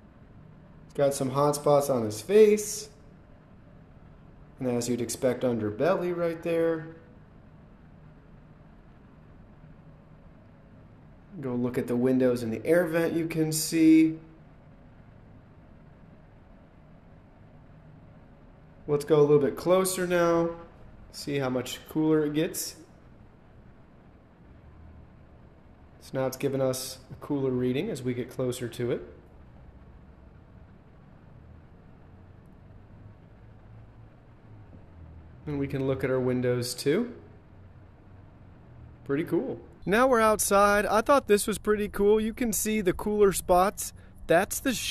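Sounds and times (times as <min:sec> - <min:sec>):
faint background hiss: 0:00.0 - 0:44.9.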